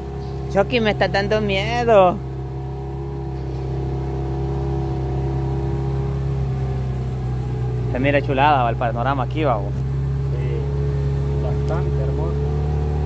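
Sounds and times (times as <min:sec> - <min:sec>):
motorboat engine droning: 0:00.0 - 0:13.0.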